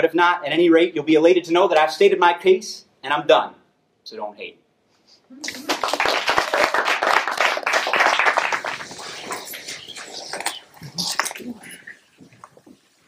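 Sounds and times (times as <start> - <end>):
audience applauding: 5.4 - 10.6.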